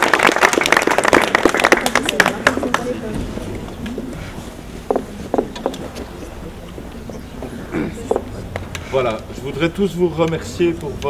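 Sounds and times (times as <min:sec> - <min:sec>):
crowd applauding: 0:00.0 - 0:03.0
faint murmured voices: 0:01.3 - 0:11.0.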